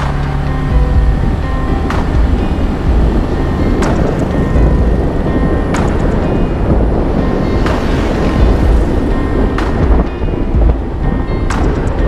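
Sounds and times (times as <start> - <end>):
background music with deep bass: 0.0 - 12.0
sharp percussive hit: 0.0 - 12.0.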